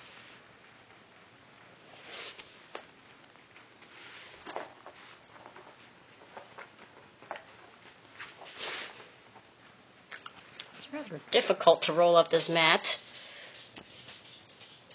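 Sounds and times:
dog paws tapping on mat: 0:02.7 - 0:08.6.

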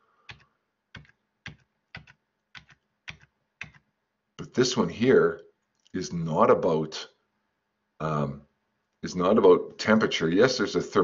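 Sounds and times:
computer key clicks: 0:00.3 - 0:03.9.

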